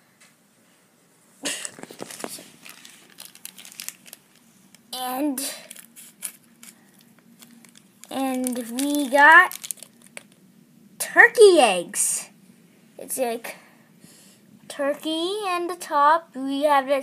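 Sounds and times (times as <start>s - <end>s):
foil wrapper crackling: 1.7s - 4.9s, 5.5s - 10.4s.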